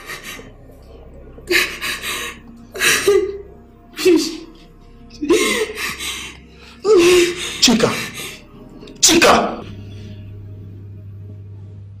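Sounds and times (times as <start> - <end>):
steady low hum: 0.0 - 12.0
woman sobbing: 1.4 - 8.4.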